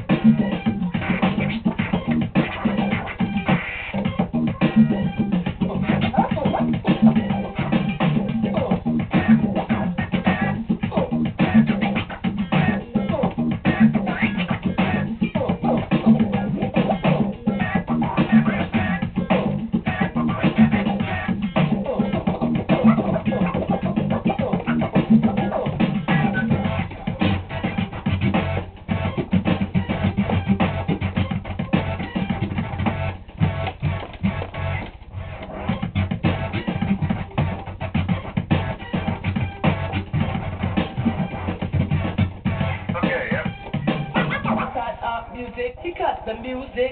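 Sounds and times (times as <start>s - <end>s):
backing track with bass: 0.0s - 44.8s
vinyl record scratching: 0.0s - 46.9s.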